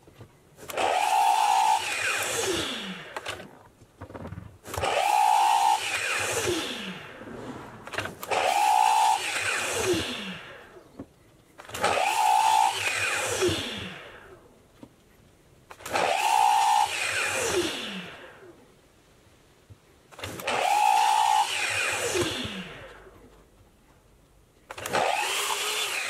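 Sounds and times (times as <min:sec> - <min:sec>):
miter saw cutting board: 0:04.7 - 0:10.8, 0:20.4 - 0:23.0, 0:24.8 - 0:26.0.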